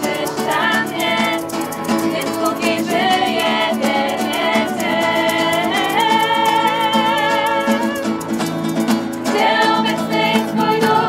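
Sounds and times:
group of women singing: 0:00.0 - 0:08.2, 0:09.2 - 0:11.0
strummed acoustic guitar: 0:00.0 - 0:11.0.

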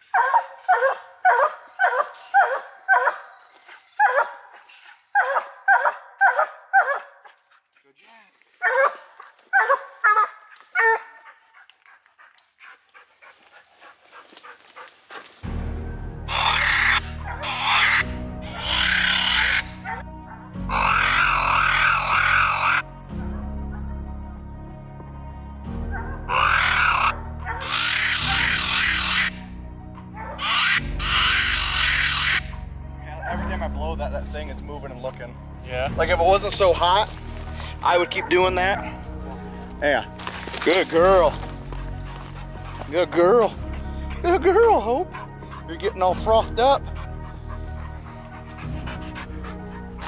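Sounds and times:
dog barking: 0:00.1 - 0:03.4, 0:04.0 - 0:04.6, 0:05.2 - 0:07.4, 0:08.6 - 0:11.4, 0:16.3 - 0:23.9, 0:25.9 - 0:29.4, 0:30.2 - 0:32.6, 0:37.6 - 0:39.4.

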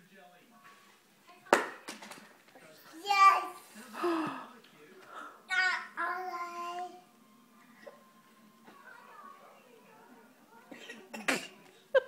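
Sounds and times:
toddler babbling: 0:02.9 - 0:03.6, 0:05.5 - 0:07.0.

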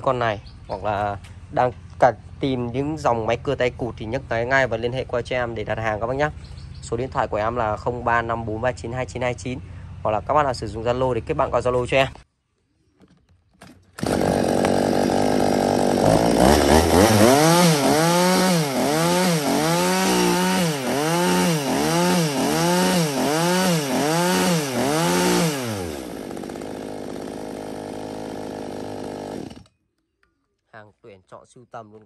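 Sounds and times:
chainsaw idling and revving: 0:14.0 - 0:29.8.

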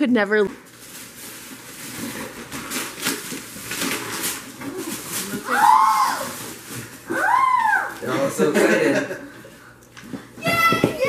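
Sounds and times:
wrapping paper rustling and tearing: 0:00.6 - 0:08.3
child squealing excitedly: 0:05.4 - 0:06.4, 0:07.1 - 0:08.0.

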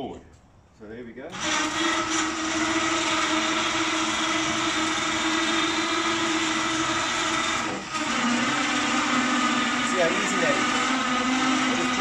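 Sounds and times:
electric motors whining: 0:01.3 - 0:12.0.

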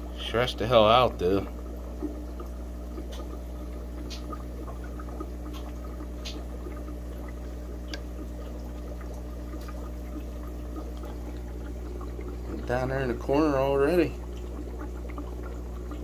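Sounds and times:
aquarium water trickling: 0:00.0 - 0:16.0
low steady hum: 0:00.0 - 0:16.0
faint ticks: 0:02.0 - 0:12.6.

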